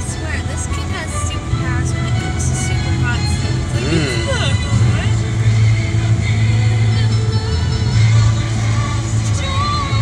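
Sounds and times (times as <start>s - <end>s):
music with long held bass notes: 0.0s - 10.0s.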